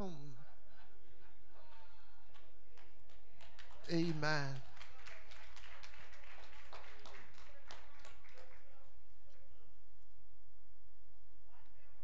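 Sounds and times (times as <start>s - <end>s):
low electrical hum: 0.0s - 12.0s
scattered hand claps: 2.3s - 9.4s.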